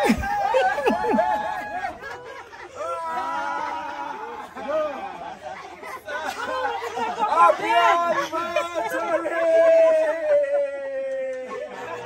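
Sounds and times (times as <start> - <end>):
people chattering excitedly: 0.0 - 12.0.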